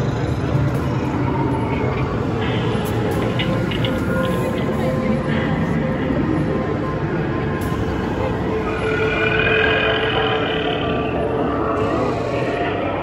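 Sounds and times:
crowd voices: 0:00.0 - 0:13.0.

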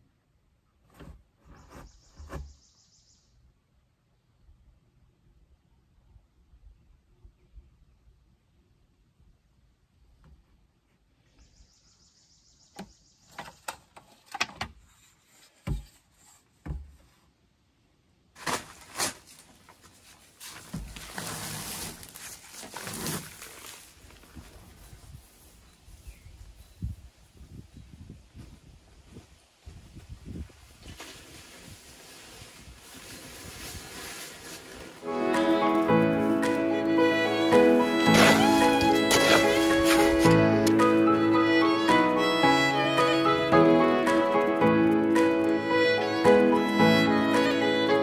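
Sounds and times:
shovel knocking and scraping in gravel: 0:18.4 - 0:24.0, 0:37.7 - 0:41.0
rustling: 0:18.4 - 0:25.8, 0:30.5 - 0:40.8
footsteps: 0:30.9 - 0:47.9
paper bag thuds: 0:38.0 - 0:40.4.

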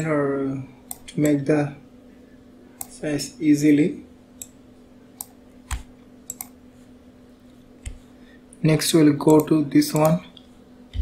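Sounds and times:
faint steady hum: 0:00.0 - 0:11.0
mouse and keyboard clicks: 0:05.2 - 0:06.6.

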